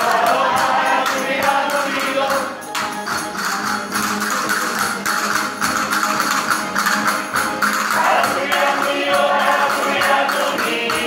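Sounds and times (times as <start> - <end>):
group singing: 0.0 - 3.0, 7.8 - 11.0
percussion beat: 0.0 - 11.0
plucked strings: 0.0 - 11.0.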